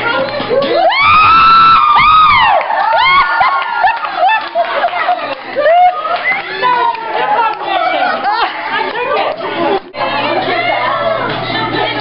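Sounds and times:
women chattering: 4.5s - 12.0s.

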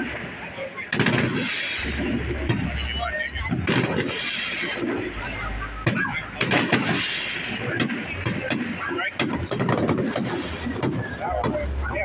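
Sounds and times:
fireworks bangs: 0.0s - 12.0s.

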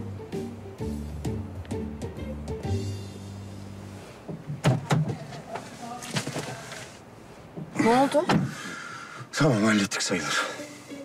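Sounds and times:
background music with beat: 0.0s - 3.6s.

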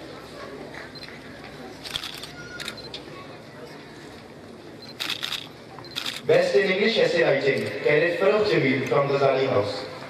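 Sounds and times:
camera shutter clicks: 1.8s - 2.9s, 4.9s - 6.3s.

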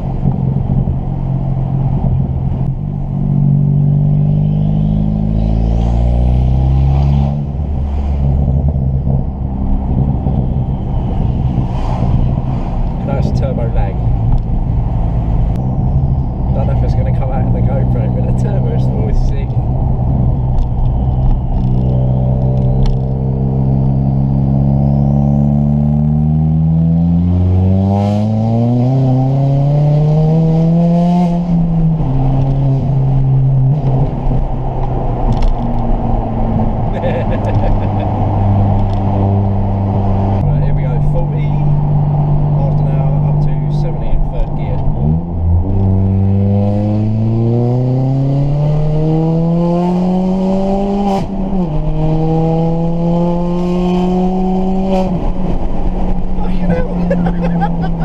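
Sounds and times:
car engine accelerating: 0.0s - 58.0s.

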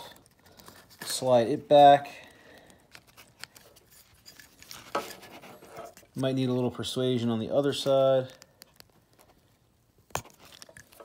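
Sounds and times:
plastic connector clicks and scraping: 2.6s - 6.2s, 8.3s - 9.4s, 10.1s - 11.0s.

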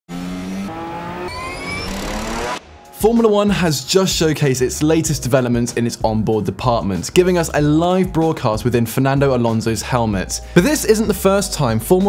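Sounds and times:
race car engine accelerating: 0.1s - 2.7s.

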